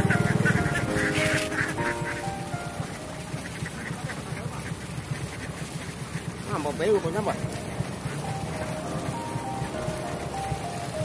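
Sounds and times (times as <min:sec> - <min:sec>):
background music with steady beat: 0:00.0 - 0:03.9, 0:07.3 - 0:11.0
ducks quacking: 0:00.0 - 0:11.0.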